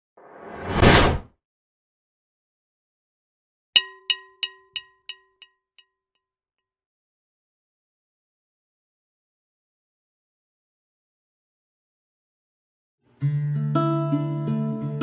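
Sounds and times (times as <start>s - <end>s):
whoosh: 0.2s - 1.3s
ringing metallic ding: 3.8s - 5.5s.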